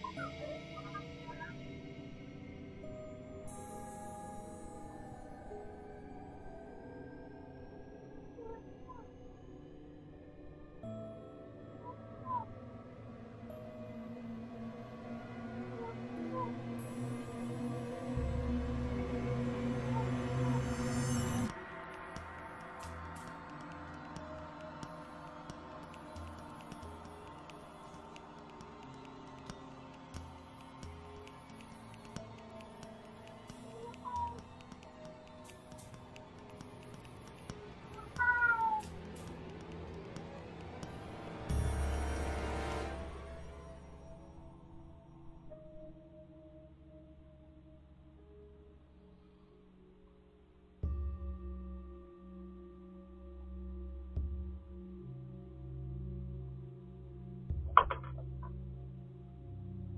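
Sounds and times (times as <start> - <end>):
low sustained music tones: 0.0 - 59.9
cat meowing: 38.0 - 38.8.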